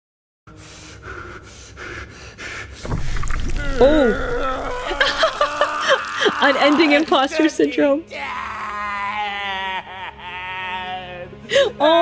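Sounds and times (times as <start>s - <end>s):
low rumble: 2.9s - 5.6s.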